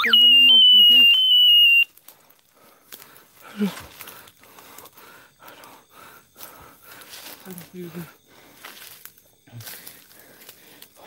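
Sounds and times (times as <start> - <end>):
shrill high-pitched tone: 0.0 - 1.9.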